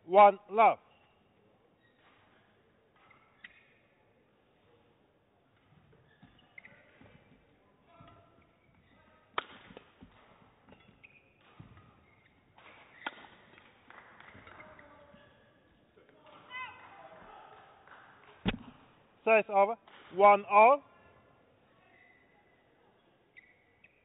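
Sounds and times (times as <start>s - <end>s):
shoes squeaking on court: 0.8s - 4.0s, 5.5s - 13.6s, 23.0s - 24.0s
rackets striking shuttlecock: 12.6s - 13.6s.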